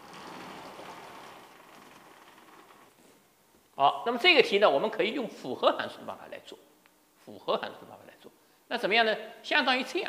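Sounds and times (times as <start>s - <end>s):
sliding panels rolling on tracks: 0.0s - 3.3s.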